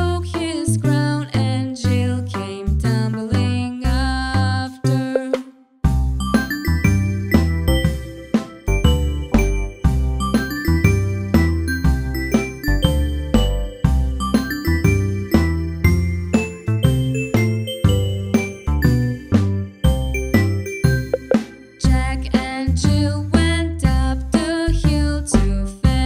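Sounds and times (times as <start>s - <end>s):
instrumental children's song music: 0.0s - 26.0s.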